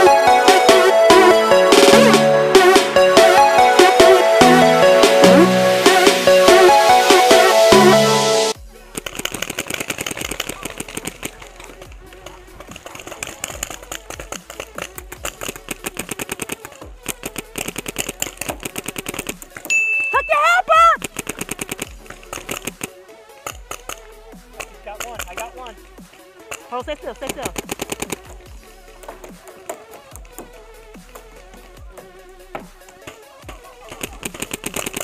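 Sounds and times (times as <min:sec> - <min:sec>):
paintball markers firing: 0:08.8 - 0:19.7, 0:21.0 - 0:35.0
person shouting: 0:20.1 - 0:21.0.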